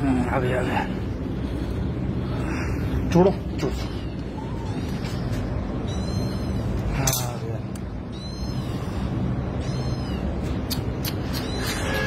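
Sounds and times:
steady low hum: 0.0 - 12.0
kitten mewing: 3.6 - 12.0.

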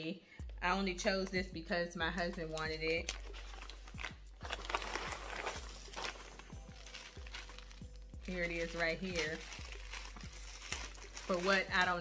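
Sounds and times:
soft background music: 0.0 - 12.0
plastic packaging crinkling: 2.4 - 12.0.

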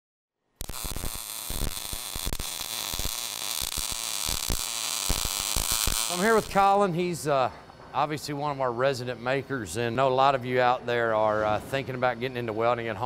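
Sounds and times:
welding arc crackling and popping: 0.6 - 6.8.

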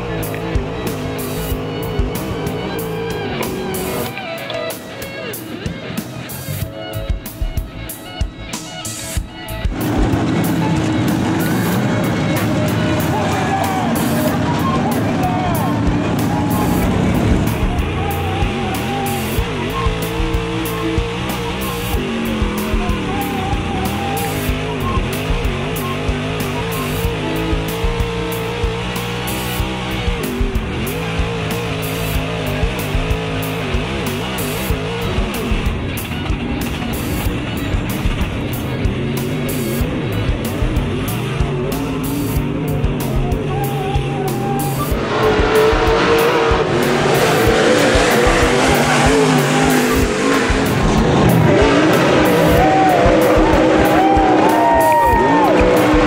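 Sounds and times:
guitar music: 0.0 - 56.0
race car engines at speed: 0.0 - 56.0.

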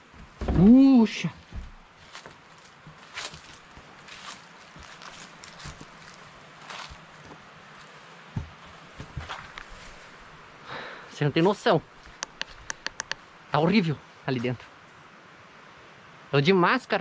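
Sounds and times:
footsteps through grass and dry leaves: 1.4 - 10.5, 11.4 - 13.4.

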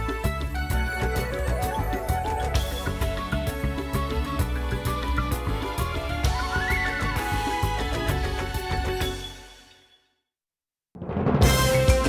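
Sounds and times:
news theme music with percussive hits: 11.0 - 12.0.

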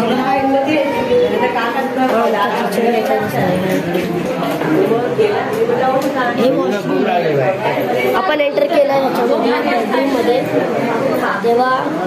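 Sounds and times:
overlapping chatter of voices: 0.0 - 12.0.

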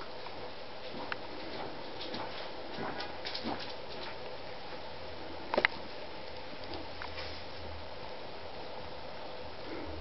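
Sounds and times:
background hiss: 0.0 - 10.0
soft rustles and mouth sounds: 5.4 - 7.7.

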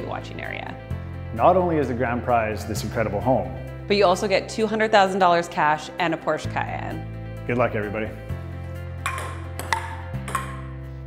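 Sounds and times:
background music: 0.0 - 11.0
ping-pong ball clicks: 9.0 - 10.8.

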